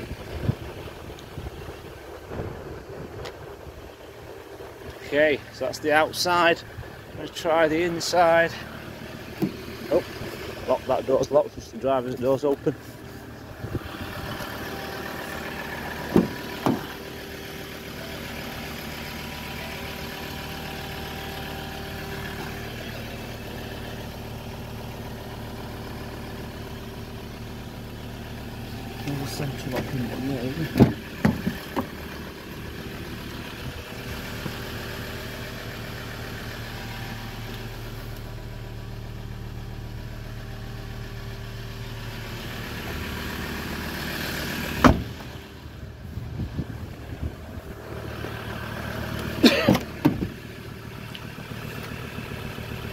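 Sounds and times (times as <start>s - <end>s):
diesel engine idling: 0.0s - 52.9s
car door clunk: 9.3s - 9.8s, 16.0s - 17.0s, 29.6s - 32.0s, 44.7s - 45.3s, 49.4s - 50.4s.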